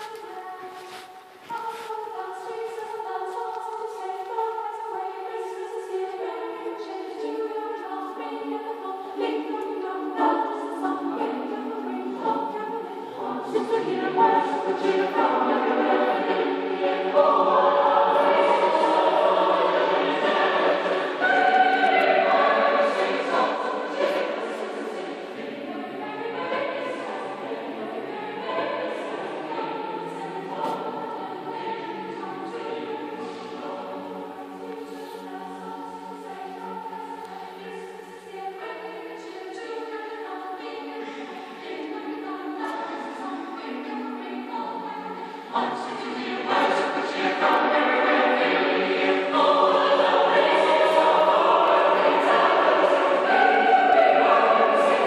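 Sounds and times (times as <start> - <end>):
choir singing sustained notes: 0.0 - 55.0.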